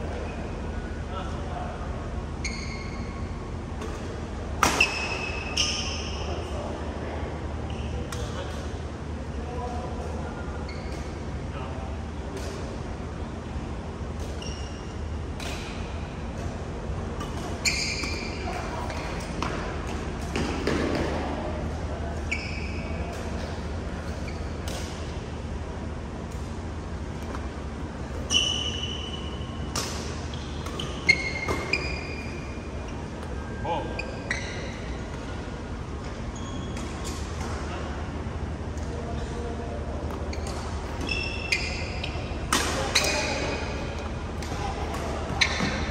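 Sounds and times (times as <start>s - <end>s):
low hall hum: 0.0s - 45.9s
shoe squeaks: 2.4s - 3.5s, 4.6s - 6.4s, 7.6s - 8.2s, 10.6s - 11.2s, 14.3s - 15.2s, 17.2s - 19.4s, 22.2s - 24.6s, 28.1s - 35.2s, 36.0s - 37.4s, 40.2s - 44.1s, 45.4s - 45.9s.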